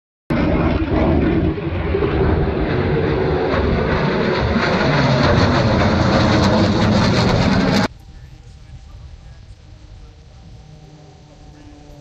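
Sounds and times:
jet engines roaring past: 0.3s - 12.0s.

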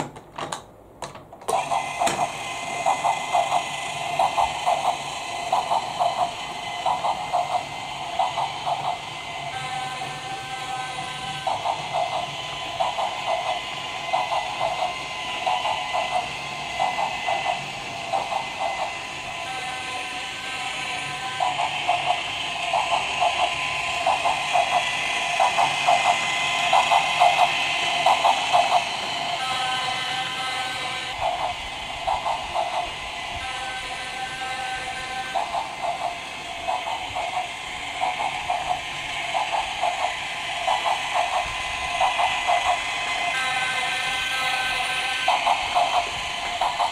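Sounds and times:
toy train whirring and chugging: 1.4s - 46.9s
held steady tone: 1.5s - 46.9s.

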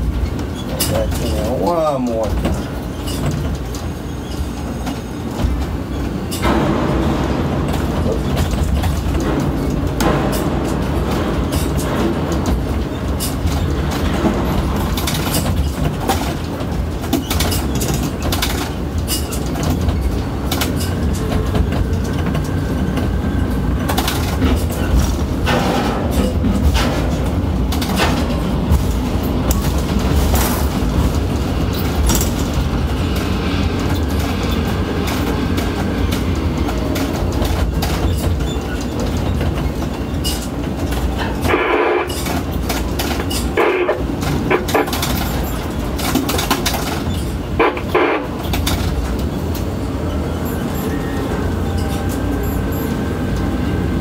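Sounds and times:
crane drives rumbling: 0.0s - 54.0s.

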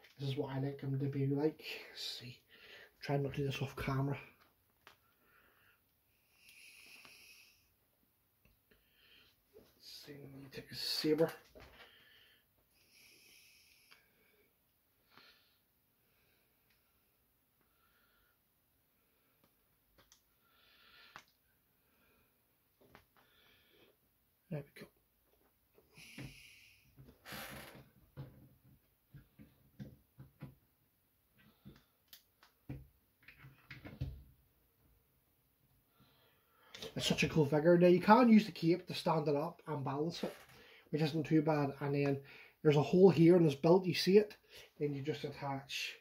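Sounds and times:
person breathing: 2.4s - 3.0s, 5.0s - 7.8s, 8.7s - 9.5s, 11.6s - 19.6s, 20.3s - 22.4s, 23.1s - 24.0s, 25.8s - 27.1s, 35.9s - 36.9s, 40.5s - 40.9s, 42.2s - 42.6s.

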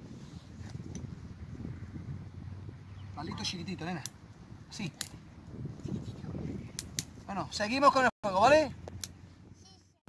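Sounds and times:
fire rustling: 3.7s - 7.5s, 8.5s - 9.6s.

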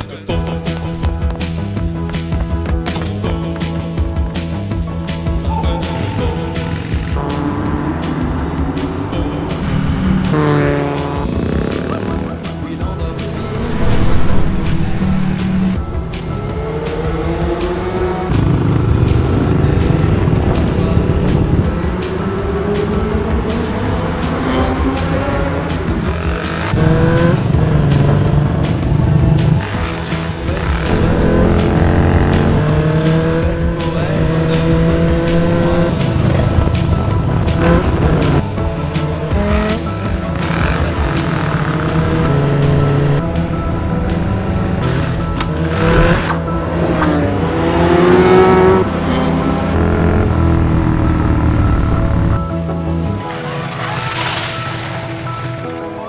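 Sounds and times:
background music: 0.0s - 56.0s
motorcycle engine revving: 1.1s - 55.6s.

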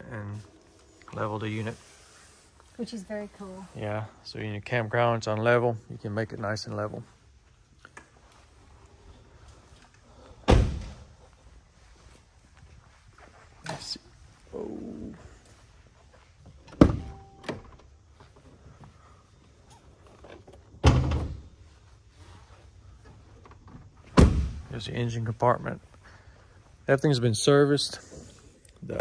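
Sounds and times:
van doors shutting: 16.6s - 18.0s, 23.7s - 24.6s.

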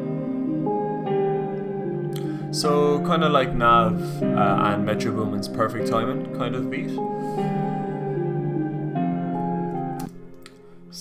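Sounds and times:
synth pad chords: 0.0s - 11.0s.

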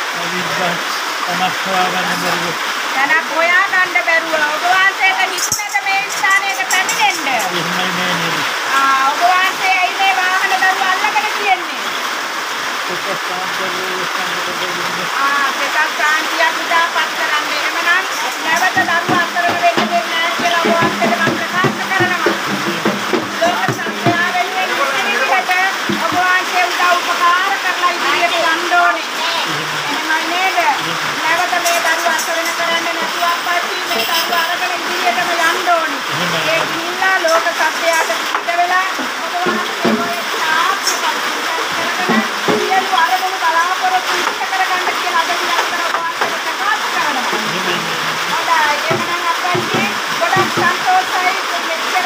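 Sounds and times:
steady noisy hiss: 0.0s - 52.0s
woman speaking rapidly: 3.0s - 7.5s, 8.7s - 11.9s, 15.2s - 22.6s, 23.2s - 47.4s, 48.3s - 52.0s
low thumps: 18.4s - 25.1s.

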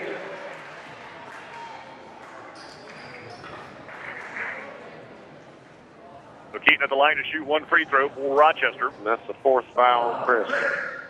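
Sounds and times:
crowd murmur in hall: 0.0s - 11.0s.

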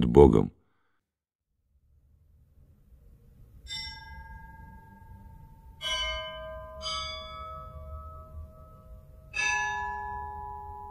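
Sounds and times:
church bells ringing: 3.7s - 10.9s.

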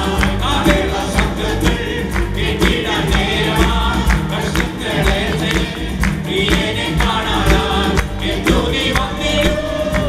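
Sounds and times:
acoustic guitar: 0.0s - 10.0s
keyboard: 0.0s - 10.0s
steady beat: 0.0s - 10.0s
voices singing together: 0.0s - 10.0s.

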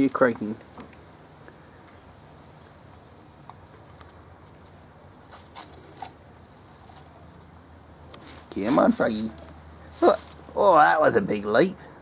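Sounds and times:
small ticks: 2.9s - 4.8s.

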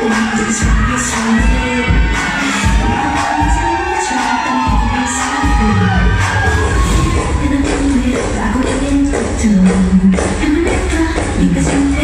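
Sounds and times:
audience cheering and screaming: 0.0s - 8.6s
dance music with bass beat: 0.0s - 12.0s.

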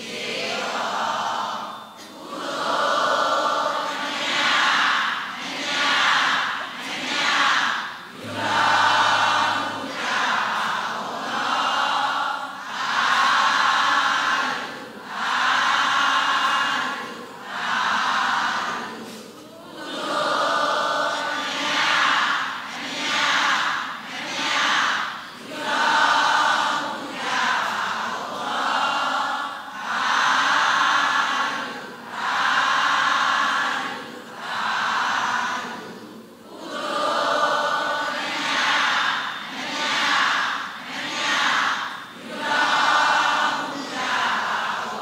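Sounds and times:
many voices chanting in unison: 0.0s - 45.0s.

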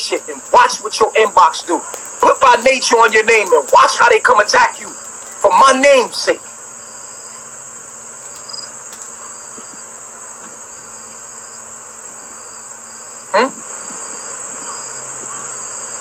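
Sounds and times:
crickets chirping: 0.0s - 16.0s.

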